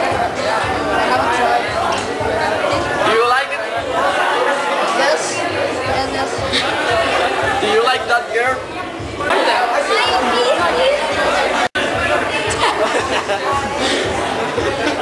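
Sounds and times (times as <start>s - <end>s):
crowd chatter: 0.0s - 15.0s
people talking: 0.0s - 15.0s.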